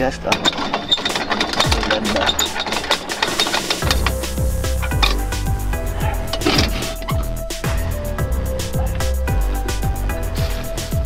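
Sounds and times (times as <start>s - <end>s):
music with fast clicking beat: 1.1s - 11.0s.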